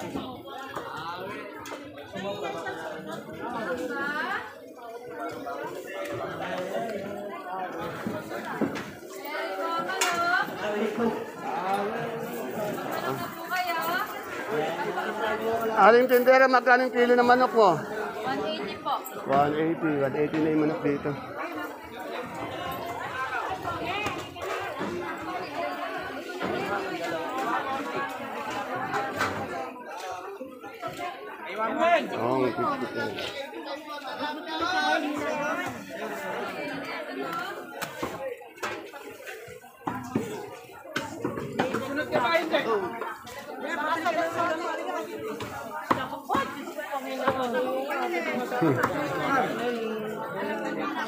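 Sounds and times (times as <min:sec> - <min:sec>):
market crowd voices: 0:00.0 - 0:51.0
vendors and shoppers talking: 0:00.0 - 0:51.0.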